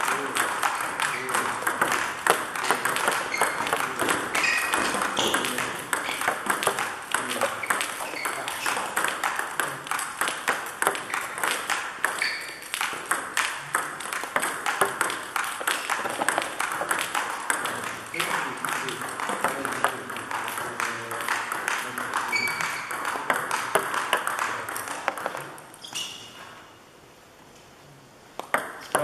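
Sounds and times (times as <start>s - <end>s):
table tennis ball clicking: 0.0s - 25.8s.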